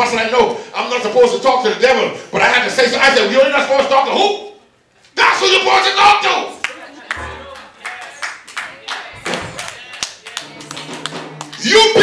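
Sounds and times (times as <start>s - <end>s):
man's loud voice: 5.2s - 6.6s, 11.6s - 12.0s
congregation clapping rhythmically: 6.6s - 12.0s.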